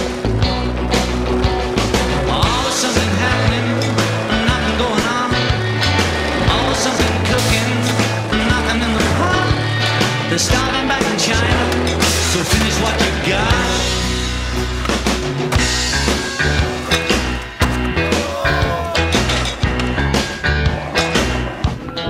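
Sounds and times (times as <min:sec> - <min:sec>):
rock music: 0:00.0 - 0:22.0
skateboard wheels rolling on concrete: 0:00.0 - 0:22.0.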